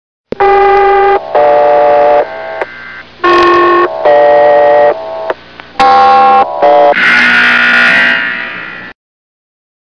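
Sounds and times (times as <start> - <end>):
buzzy electronic two-note alert: 0.4 - 8.9.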